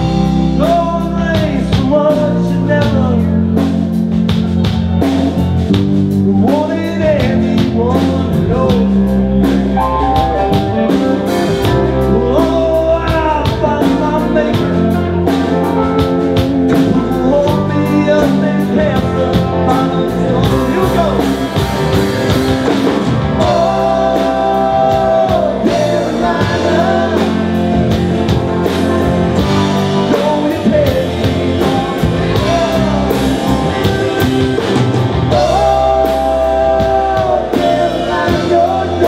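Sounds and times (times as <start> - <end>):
drum kit steady beat: 0.0 - 39.0
man singing lead: 0.0 - 39.0.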